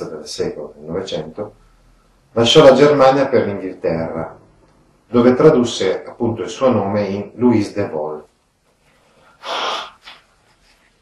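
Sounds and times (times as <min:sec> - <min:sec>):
man breathing in through mouth: 0:09.2 - 0:10.2.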